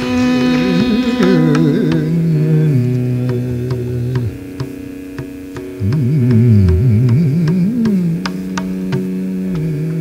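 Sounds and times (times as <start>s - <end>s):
man singing long notes: 0.0s - 10.0s
tanpura drone: 0.0s - 10.0s
light evenly spaced taps: 3.2s - 9.7s.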